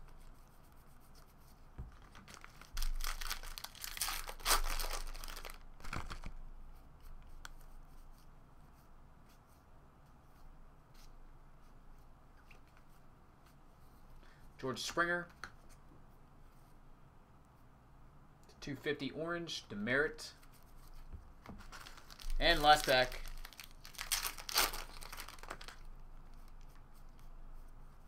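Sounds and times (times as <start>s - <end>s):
wrapper tearing and crinkling: 1.9s - 6.3s, 21.6s - 25.9s.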